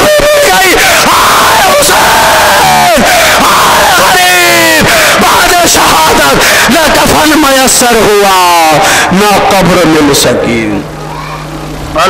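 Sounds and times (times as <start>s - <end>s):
crowd of mourners crying out: 0.0s - 7.2s
man wailing into a microphone: 0.0s - 7.3s.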